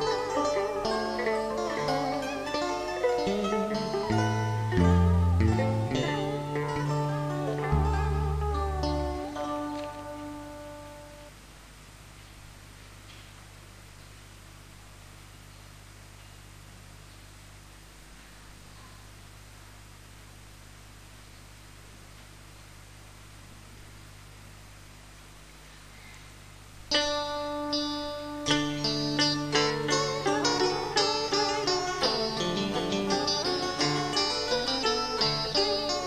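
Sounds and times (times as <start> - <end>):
plucked-string notes ringing: 0.0 - 11.3, 26.9 - 36.0
faint hiss: 0.0 - 36.0
faint low hum: 0.0 - 36.0.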